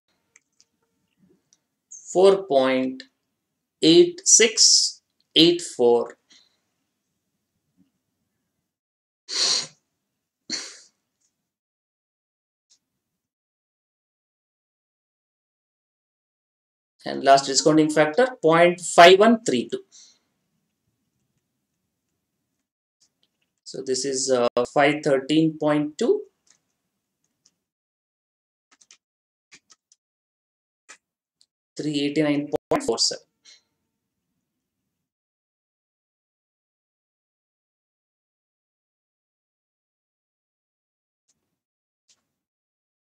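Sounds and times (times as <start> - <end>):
man sneezing: 9.3 - 9.8.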